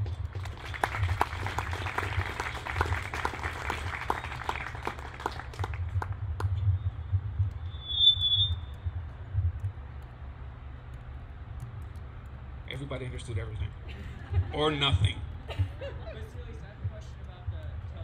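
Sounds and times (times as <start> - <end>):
audience applauding: 0.0 - 6.5.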